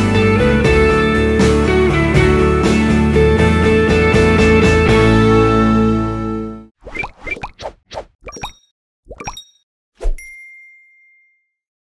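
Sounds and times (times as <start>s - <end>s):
cartoon pops rising in pitch: 6.8s - 9.5s
bright bell-like ding: 10.2s - 11.6s
chime-like tinkles: 10.2s - 11.7s.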